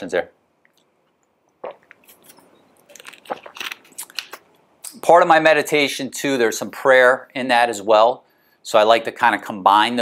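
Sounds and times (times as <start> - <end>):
plastic bottle crinkling: 1.6 - 4.6.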